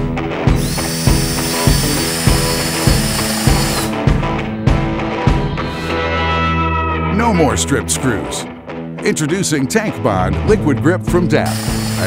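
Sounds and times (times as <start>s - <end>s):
rock music with strong beat: 0.0s - 12.0s
cordless drill whining: 0.5s - 4.0s, 11.4s - 12.0s.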